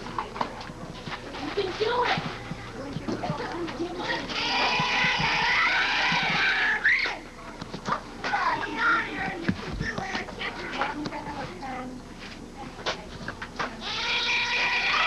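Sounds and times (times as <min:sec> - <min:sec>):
children shouting and chattering: 0:00.0 - 0:13.0, 0:13.7 - 0:15.0.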